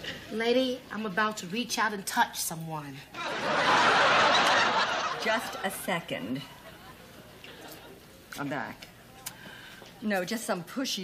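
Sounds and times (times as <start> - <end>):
studio audience laughing: 3.2 - 7.9.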